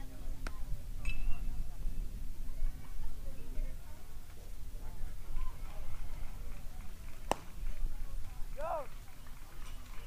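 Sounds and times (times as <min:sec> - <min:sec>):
open-air background noise: 0:00.0 - 0:10.0
bat cracking a baseball: 0:07.2 - 0:07.6.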